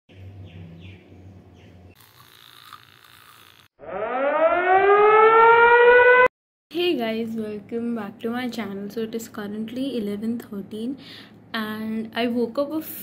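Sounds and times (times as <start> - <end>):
siren winding up: 3.8 - 6.3.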